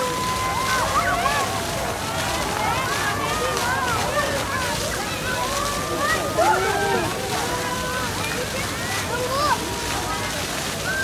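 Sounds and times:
crowd chattering: 0:00.0 - 0:11.0
fountain water splashing: 0:00.0 - 0:11.0.

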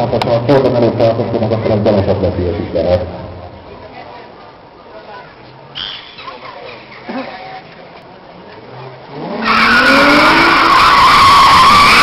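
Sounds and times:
car tyres squealing: 0:09.1 - 0:12.0.

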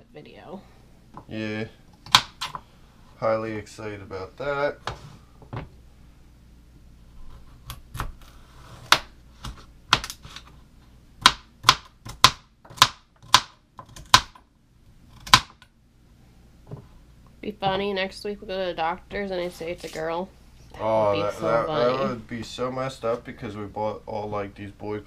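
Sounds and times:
knife chopping on plastic board: 0:02.0 - 0:02.6, 0:11.2 - 0:14.4, 0:15.2 - 0:15.6.

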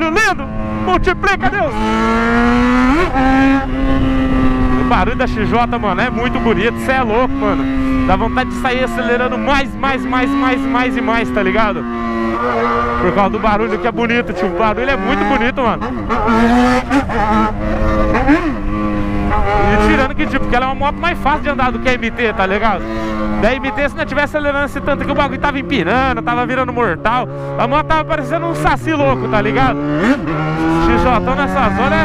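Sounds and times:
motorcycle engine and exhaust: 0:00.0 - 0:32.0.

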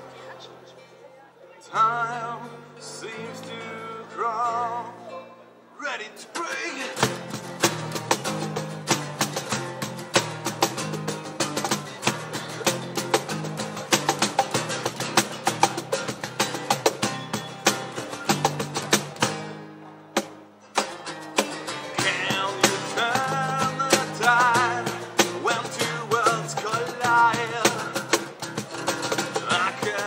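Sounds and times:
man singing: 0:01.6 - 0:05.1, 0:05.8 - 0:07.2, 0:21.8 - 0:28.4, 0:29.0 - 0:30.0
acoustic guitars strumming: 0:01.7 - 0:30.0.

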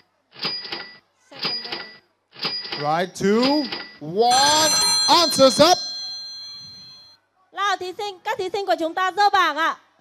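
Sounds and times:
countdown timer ticking: 0:02.6 - 0:07.0.

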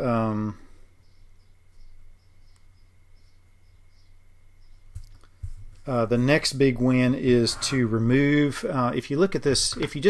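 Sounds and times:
faint ticks: 0:02.5 - 0:02.7
microphone hum and hiss: 0:04.6 - 0:10.0
man saying uh: 0:05.9 - 0:10.0.

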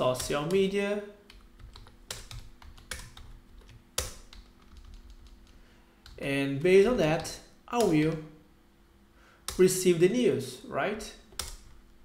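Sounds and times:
keyboard typing: 0:00.0 - 0:06.2, 0:11.3 - 0:11.8.

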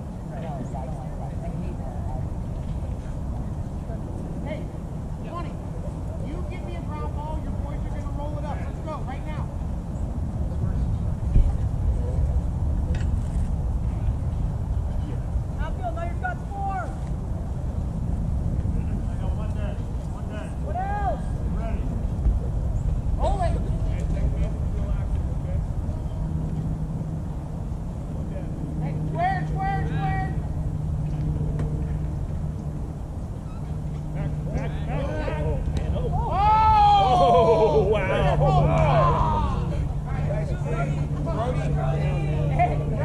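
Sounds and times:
low steady hum: 0:00.0 - 0:43.0
steady low rumble: 0:00.0 - 0:43.0
distant shouts from players: 0:15.6 - 0:17.0, 0:20.5 - 0:21.4, 0:33.4 - 0:42.6.

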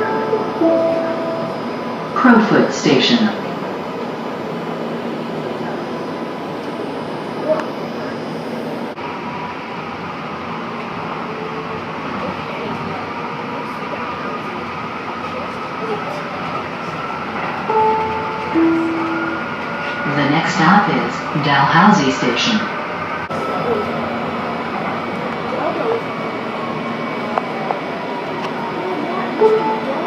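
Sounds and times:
automated voice announcement: 0:00.0 - 0:03.6, 0:17.7 - 0:24.0
train rumbling on track: 0:00.0 - 0:30.0.

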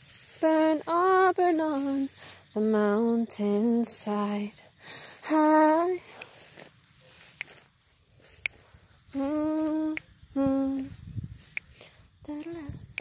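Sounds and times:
woman humming notes: 0:09.1 - 0:11.3, 0:12.2 - 0:13.0.

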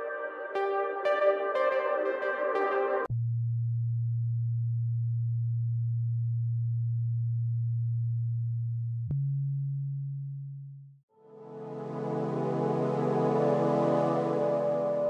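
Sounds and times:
low electronic pure tone: 0:00.0 - 0:04.9, 0:11.2 - 0:15.0.

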